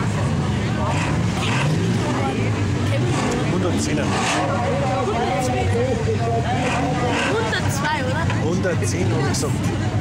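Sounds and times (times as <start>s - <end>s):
stock car engines droning: 0.0s - 10.0s.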